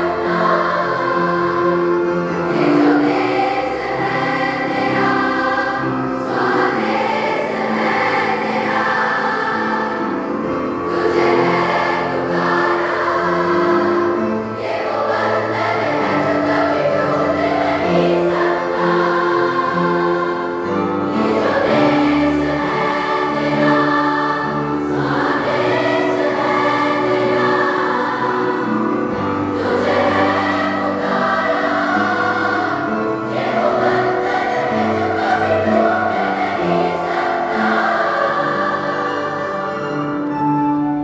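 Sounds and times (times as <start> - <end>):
choir singing: 0.0 - 41.0
instrumental accompaniment: 0.0 - 41.0.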